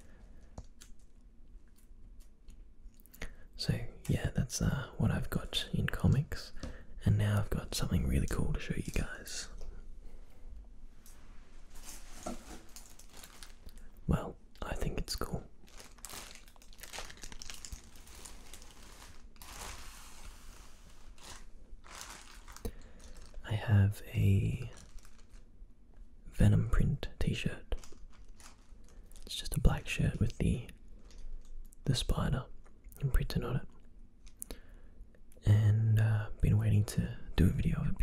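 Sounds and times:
plastic bag crinkling: 11.8s - 14.0s, 15.2s - 23.5s, 24.4s - 25.6s, 27.7s - 29.4s, 31.0s - 31.6s.

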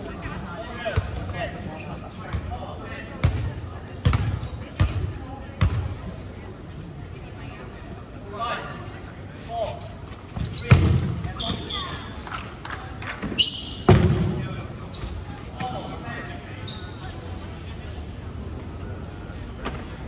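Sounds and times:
players' voices: 0.0s - 20.0s.

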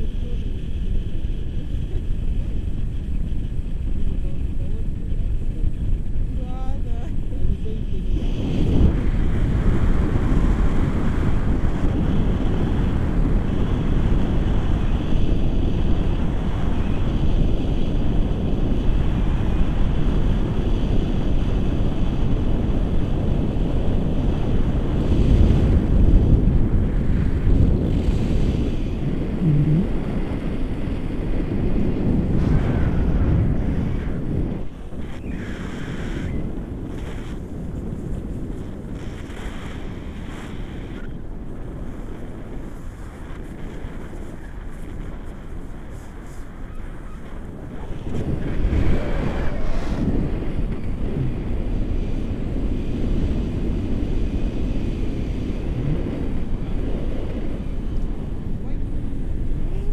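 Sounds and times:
wind rushing over microphone: 0.0s - 59.9s.

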